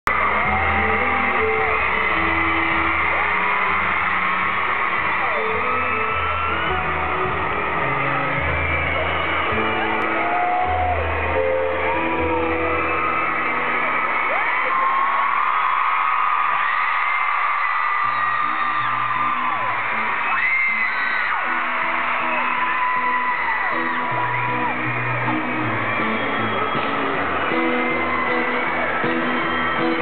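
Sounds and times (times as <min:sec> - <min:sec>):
fans screaming and whooping: 0:00.1 - 0:30.0
live band music: 0:23.8 - 0:30.0.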